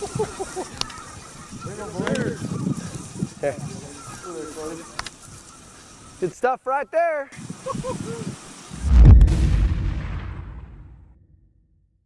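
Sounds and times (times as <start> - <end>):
geese honking: 0.0 - 7.0.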